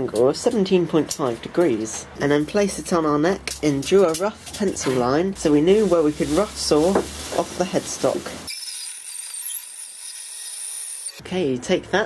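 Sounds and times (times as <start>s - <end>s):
bandsaw cutting wood: 8.5s - 11.2s.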